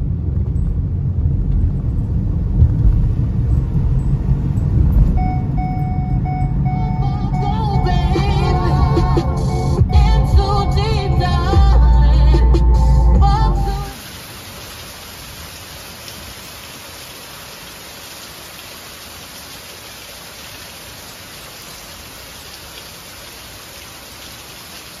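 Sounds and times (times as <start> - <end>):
background music: 6.2 - 13.9
rain on foliage and pavement: 13.8 - 25.0.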